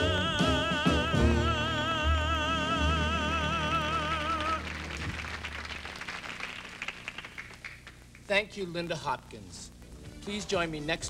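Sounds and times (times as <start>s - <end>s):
backing music: 0.0s - 5.6s
applause: 4.1s - 8.3s.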